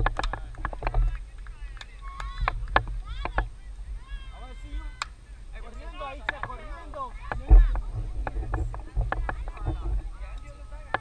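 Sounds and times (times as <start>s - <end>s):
people talking: 0.0s - 11.0s
wind buffeting microphone: 0.0s - 11.0s.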